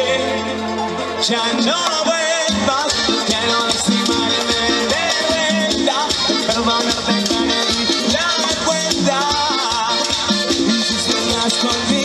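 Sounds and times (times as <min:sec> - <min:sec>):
keyboard melody: 0:00.0 - 0:12.0
live band dance music: 0:00.0 - 0:12.0.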